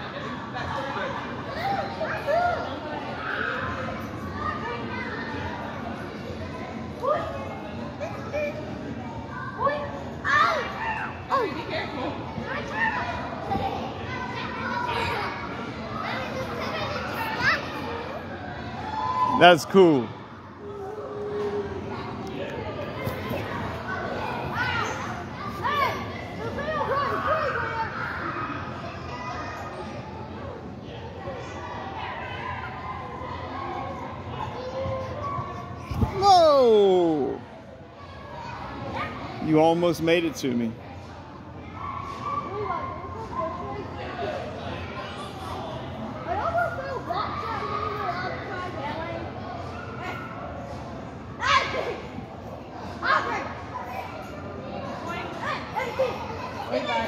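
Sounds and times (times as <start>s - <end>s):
background din of play and chatter: 0.0s - 57.0s.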